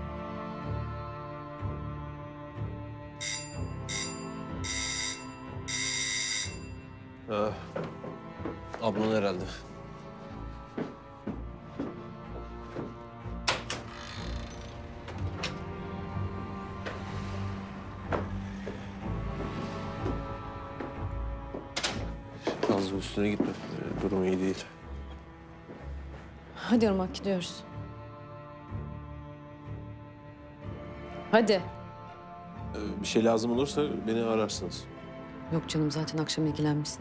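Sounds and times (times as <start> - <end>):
soft background music: 0.0 - 37.0
sustained drama score tones: 3.0 - 9.0, 14.3 - 22.2
phone ringing: 3.2 - 7.0.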